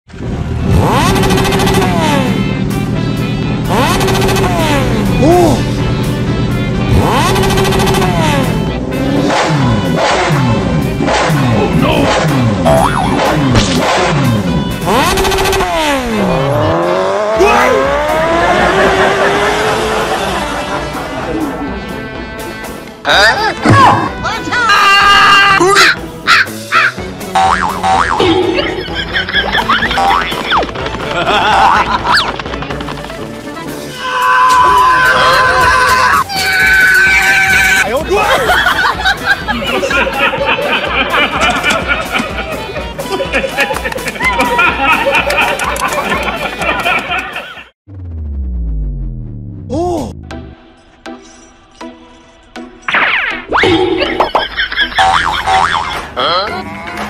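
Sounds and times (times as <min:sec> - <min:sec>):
motorcycle engine revving: 0:00.1 - 0:22.8
background music: 0:00.1 - 0:57.0
pitched sound effect: 0:03.7 - 0:05.6, 0:11.1 - 0:19.9.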